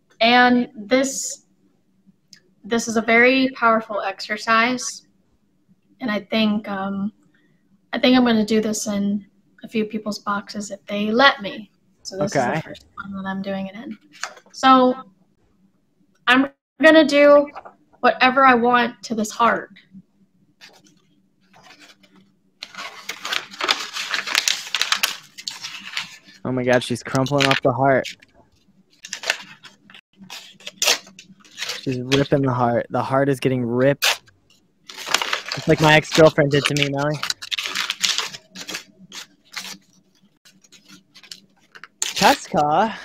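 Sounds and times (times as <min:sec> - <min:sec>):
paper crumpling: 0:20.6 - 0:28.4, 0:29.0 - 0:32.4, 0:34.0 - 0:42.7.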